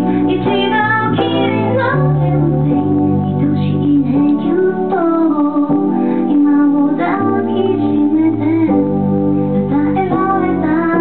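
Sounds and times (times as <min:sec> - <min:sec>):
keyboard playing: 0:00.0 - 0:11.0
woman singing slow song: 0:00.0 - 0:11.0.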